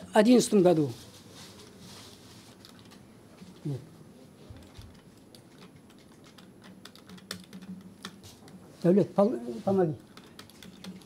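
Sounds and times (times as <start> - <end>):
man speaking: 8.8 - 10.0.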